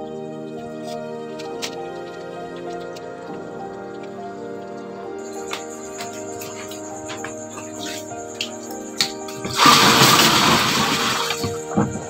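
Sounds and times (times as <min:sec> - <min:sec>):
background music: 0:00.0 - 0:12.0
water poured from plastic basin: 0:09.5 - 0:11.6.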